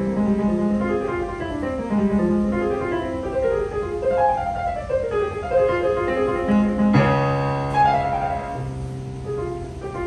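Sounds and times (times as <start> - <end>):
digital piano music: 0.0 - 10.0
piano chord with deep bass note: 0.0 - 10.0.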